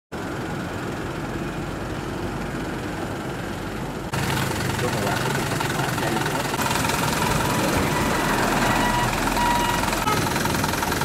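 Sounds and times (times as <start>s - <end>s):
street noise: 0.1s - 11.0s
vehicle engine idling: 0.2s - 11.0s.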